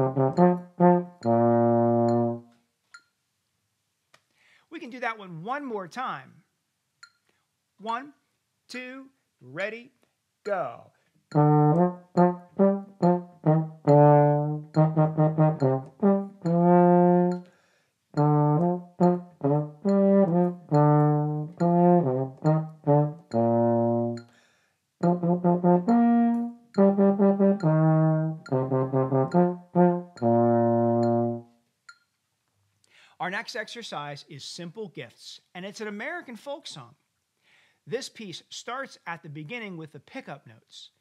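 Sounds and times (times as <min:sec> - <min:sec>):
baritone horn playing exercise: 0:00.0 - 0:02.6, 0:11.3 - 0:24.4, 0:25.0 - 0:31.6.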